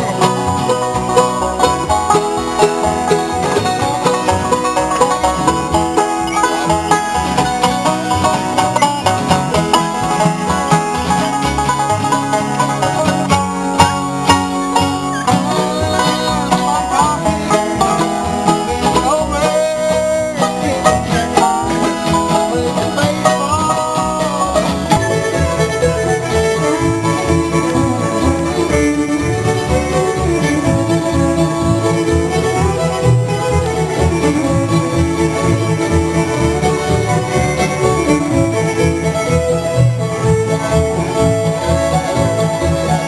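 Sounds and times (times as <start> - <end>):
acoustic guitar: 0.0 - 43.0
banjo rolls: 0.0 - 43.0
mandolin: 0.0 - 43.0
slide resonator guitar: 0.0 - 43.0
upright bass: 0.0 - 43.0.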